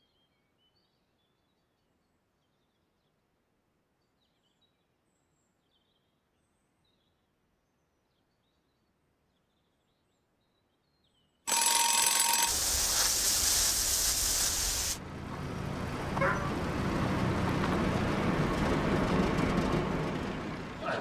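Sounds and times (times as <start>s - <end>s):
alarm clock ringing: 11.5s - 15.0s.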